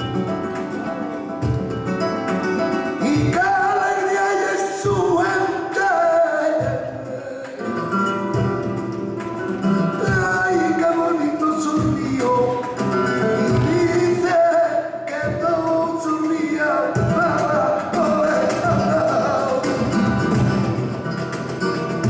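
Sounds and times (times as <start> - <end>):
acoustic guitars playing: 0.0 - 22.0
cajon drum: 0.0 - 22.0
hand clapping: 0.0 - 22.0
ornamented vocal singing: 3.0 - 7.9, 10.0 - 20.9.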